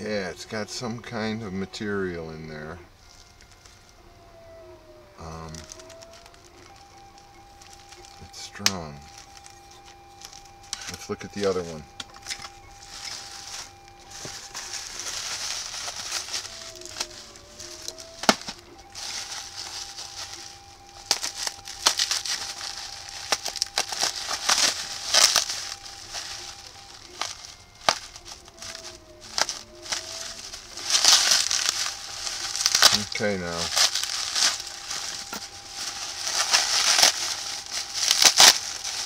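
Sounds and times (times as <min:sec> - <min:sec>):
bubble wrap crinkling and popping: 0:00.0 - 0:39.0.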